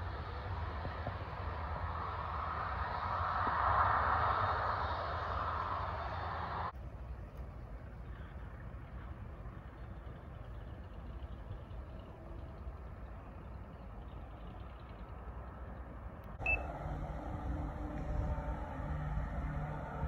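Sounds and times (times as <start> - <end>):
propeller aircraft engines droning: 0.0 - 20.0
wind rumble on microphone: 0.0 - 20.0.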